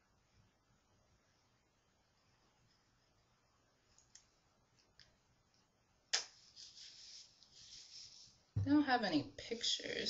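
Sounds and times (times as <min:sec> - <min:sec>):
glove rustling against hair: 0:06.3 - 0:08.5.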